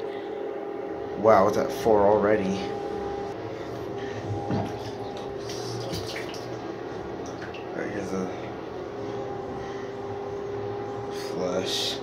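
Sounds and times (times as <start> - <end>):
steady low hum: 0.0 - 12.0
water trickling and splashing: 4.7 - 6.6, 7.2 - 7.7.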